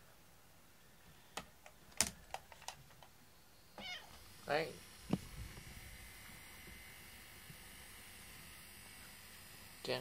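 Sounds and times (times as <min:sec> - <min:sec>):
cat meowing: 0:03.8 - 0:04.2.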